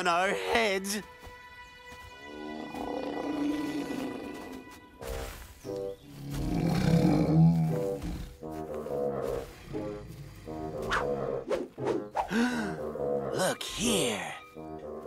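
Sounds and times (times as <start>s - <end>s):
background music: 0.0s - 15.0s
deep animal roar: 6.2s - 8.4s.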